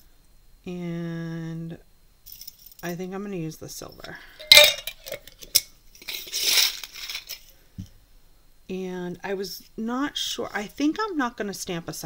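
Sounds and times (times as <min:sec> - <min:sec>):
jingle bells clinking in bowl: 0:04.4 - 0:05.3.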